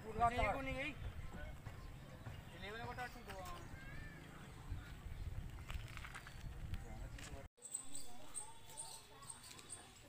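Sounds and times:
low wind rumble on microphone: 0:03.6 - 0:07.4.

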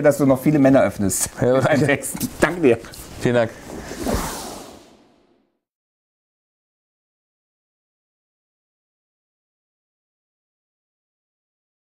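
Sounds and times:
whoosh: 0:03.6 - 0:05.6.

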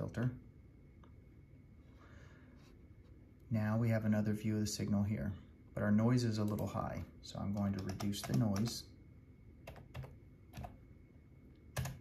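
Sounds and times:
computer keyboard keystrokes: 0:07.4 - 0:08.8, 0:09.6 - 0:10.8, 0:11.7 - 0:12.0.

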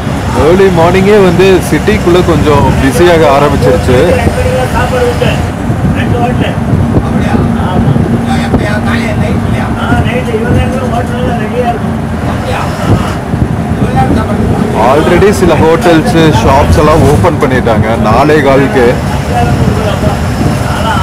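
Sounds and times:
bus engine and road drone: 0:00.0 - 0:21.0.

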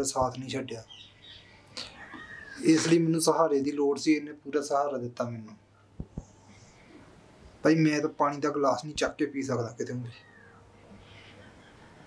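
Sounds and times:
man speaking: 0:02.6 - 0:05.6, 0:07.6 - 0:10.2.

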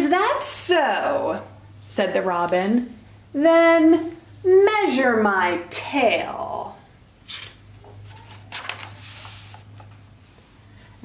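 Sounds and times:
paper page rustle: 0:07.2 - 0:10.1.

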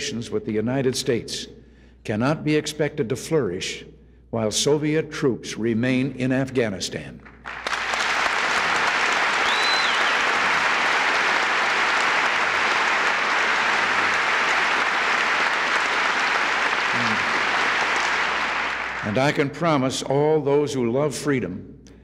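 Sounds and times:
audience applauding: 0:07.4 - 0:19.6
high whistle: 0:08.8 - 0:10.9.

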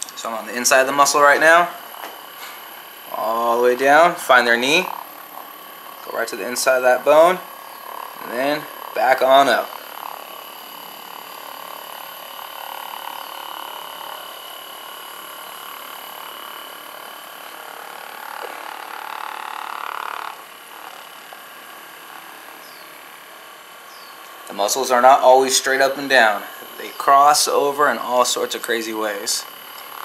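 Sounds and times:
massage gun buzzing: 0:00.0 - 0:30.0.

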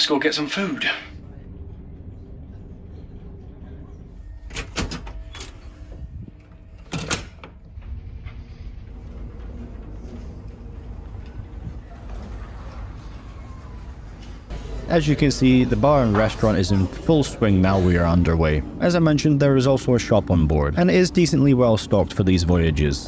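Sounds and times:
ferry engines droning: 0:00.6 - 0:04.6, 0:07.6 - 0:23.0.

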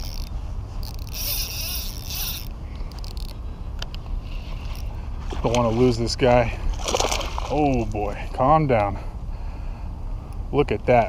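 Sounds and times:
fishing reel whirring: 0:00.0 - 0:03.4, 0:04.2 - 0:05.0
steady low rumble: 0:00.0 - 0:11.0.

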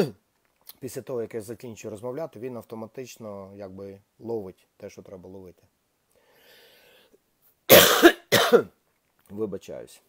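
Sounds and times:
man coughing: 0:07.7 - 0:08.7.

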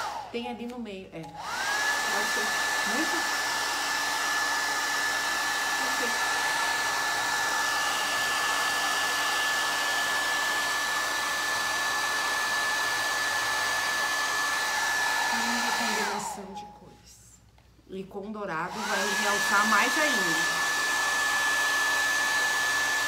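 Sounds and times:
hair dryer blowing with whine: 0:00.0 - 0:16.7, 0:18.3 - 0:23.0.

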